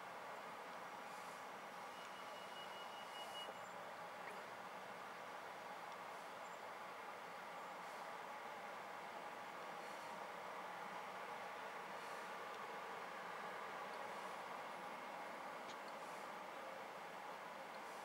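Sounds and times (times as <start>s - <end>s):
faint background noise: 0.0s - 18.0s.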